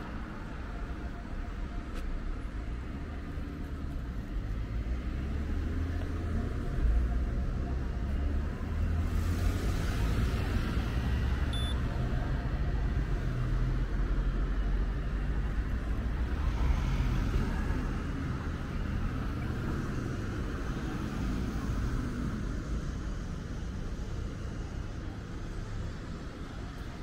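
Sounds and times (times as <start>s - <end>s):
rumble of road traffic: 0.0s - 27.0s
car passing with tyre hiss: 8.2s - 11.6s.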